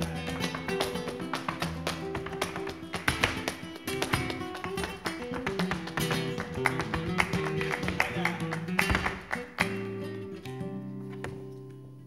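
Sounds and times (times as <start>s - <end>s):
dancer's shoes tapping on stage: 0.0s - 10.0s
flamenco guitar: 0.0s - 12.0s.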